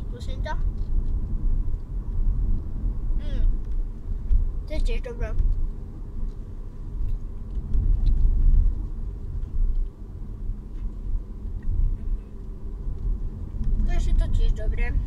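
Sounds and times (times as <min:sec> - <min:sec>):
car cabin rumble: 0:00.0 - 0:15.0.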